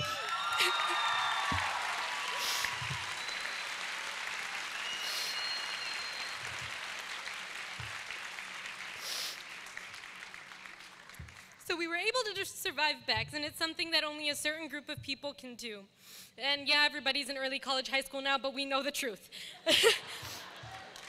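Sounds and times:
audience applauding: 0.0 - 11.6, 20.3 - 21.0.

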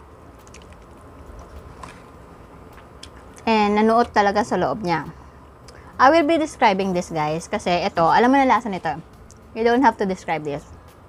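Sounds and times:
low steady hum: 0.0 - 11.0
faint chewing: 0.4 - 3.5.

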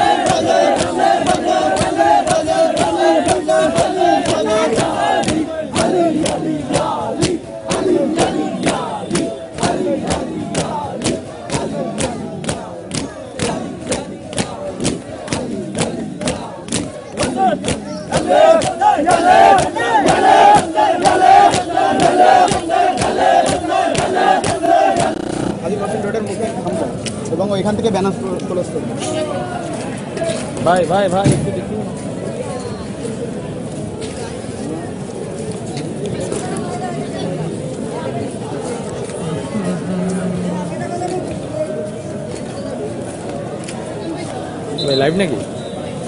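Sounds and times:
men chanting: 0.0 - 25.7.

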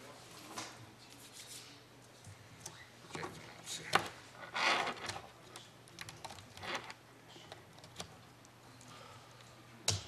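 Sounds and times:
laptop keyboard typing: 5.0 - 8.3.

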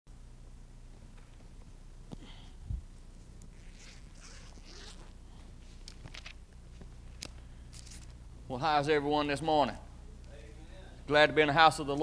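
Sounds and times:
low steady hum: 0.1 - 12.0.

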